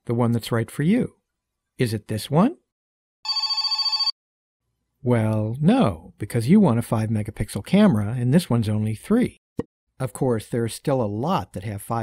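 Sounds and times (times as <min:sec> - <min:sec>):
high trilling telephone ring: 0:03.2 - 0:04.2.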